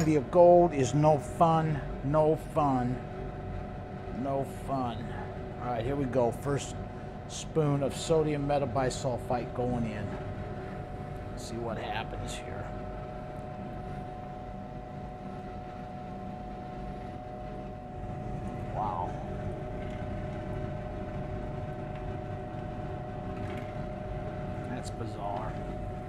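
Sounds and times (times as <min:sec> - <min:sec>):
machine hum: 0:00.0 - 0:26.0.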